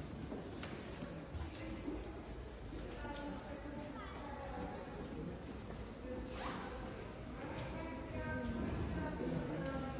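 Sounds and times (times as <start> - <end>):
low room murmur: 0.0 - 9.9.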